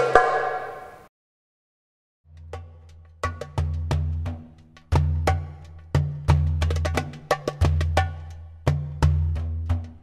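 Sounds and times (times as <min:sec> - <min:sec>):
goblet drum rhythm: 0:02.3 - 0:10.0.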